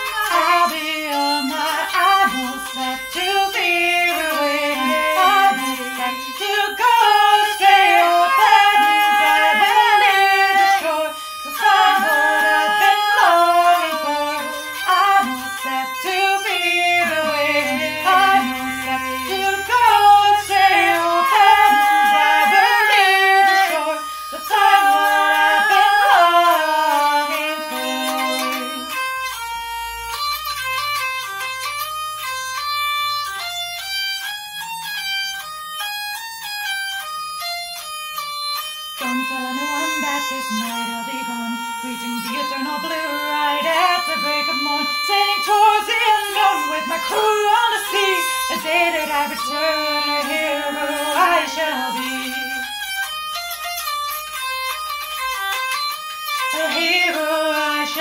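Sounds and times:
wordless singing: 0.0 - 29.4, 39.0 - 52.9, 56.4 - 58.0
hurdy-gurdy melody over drone: 0.0 - 58.0.

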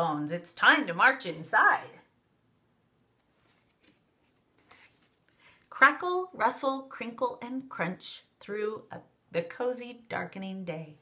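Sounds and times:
faint rustle of book: 3.1 - 5.8.

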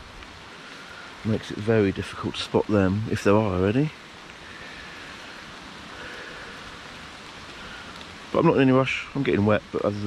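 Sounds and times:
rain falling: 0.0 - 10.0.

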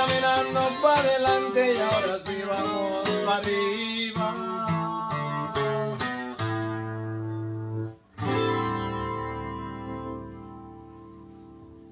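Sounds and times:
acoustic guitar strummed chords: 0.0 - 11.9.

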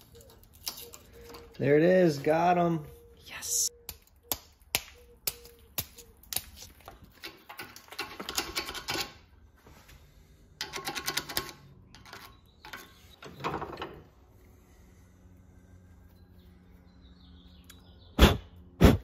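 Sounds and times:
vise clicking and rattling: 7.2 - 9.2, 10.6 - 14.0.

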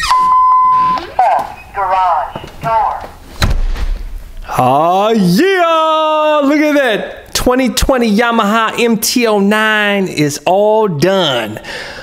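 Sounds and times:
electronic beep: 0.0 - 2.6.

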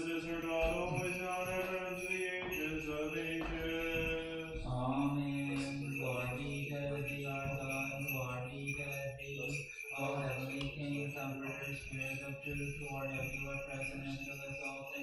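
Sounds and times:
voices chanting held notes: 0.0 - 12.3.

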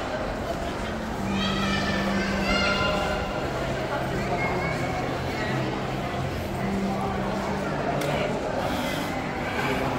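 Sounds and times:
voices indoors: 0.0 - 9.9.

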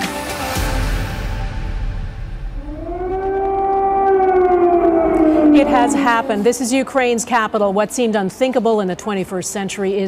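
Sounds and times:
air-raid siren wailing: 2.6 - 8.3
newscaster speaking: 5.5 - 10.0.

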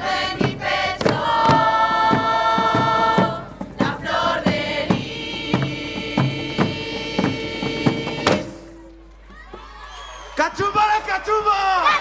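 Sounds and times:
sharp drum strikes: 0.0 - 8.8.

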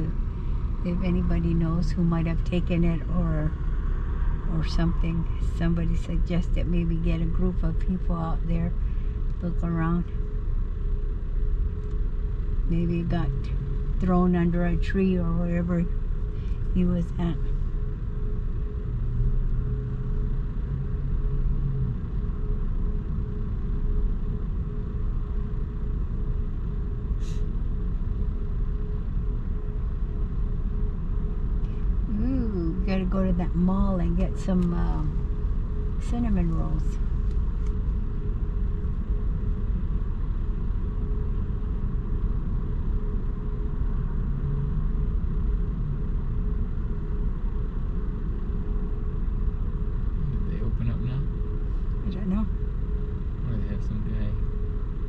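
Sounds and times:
car idling rumble: 0.0 - 55.0
deeper hum: 0.0 - 55.0
faint steady hum: 0.0 - 55.0.

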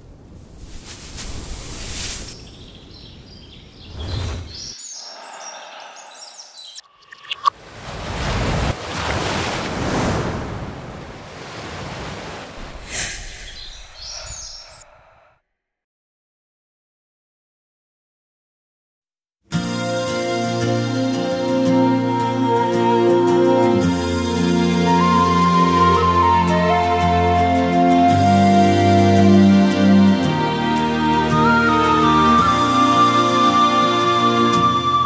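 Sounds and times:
birds chirping: 2.3 - 7.5, 12.8 - 15.3
waves breaking over rocks: 7.4 - 13.0
rushing noise: 12.6 - 15.3.

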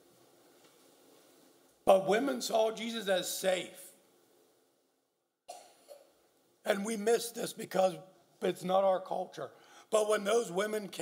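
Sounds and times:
faint cough: 5.5 - 6.2.

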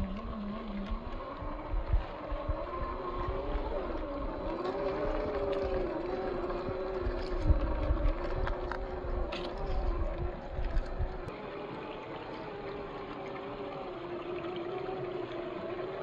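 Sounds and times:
electric motor whining: 0.0 - 16.0.

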